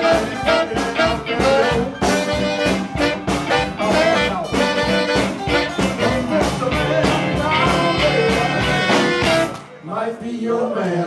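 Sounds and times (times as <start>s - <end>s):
blues band playing: 0.0s - 10.0s
saxophones: 0.0s - 10.1s.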